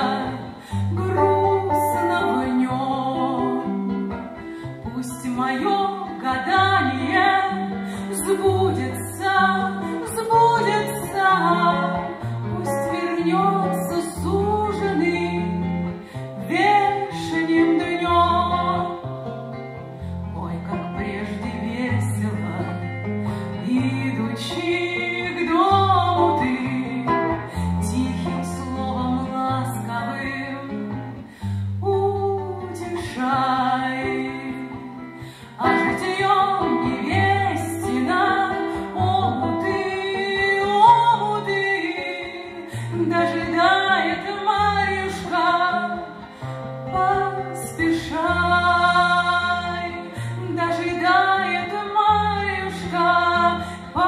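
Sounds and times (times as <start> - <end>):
person singing: 0.0 - 19.0, 20.4 - 54.0
plucked guitar chords: 0.0 - 54.0
women singing together: 35.6 - 46.2, 46.9 - 54.0.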